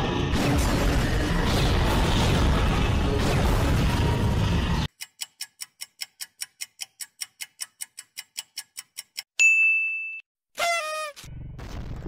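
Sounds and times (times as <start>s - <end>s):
countdown timer ticking: 4.9s - 9.4s
bell-like ding: 9.4s - 10.3s.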